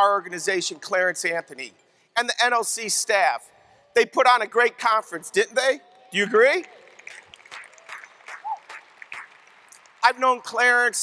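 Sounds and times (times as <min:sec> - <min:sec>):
audience applause: 0:06.2 - 0:11.0.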